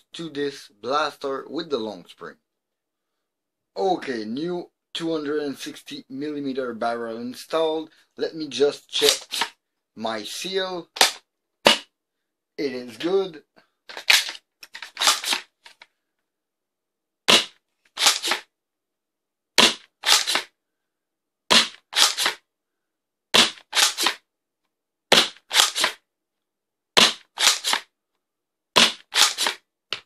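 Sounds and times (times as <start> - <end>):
dart blaster clacking: 9.0 - 9.5, 11.0 - 11.9, 13.9 - 15.4, 17.3 - 18.4, 19.6 - 20.5, 21.5 - 22.4, 23.4 - 24.2, 25.1 - 26.0, 27.0 - 27.8, 28.8 - 30.0.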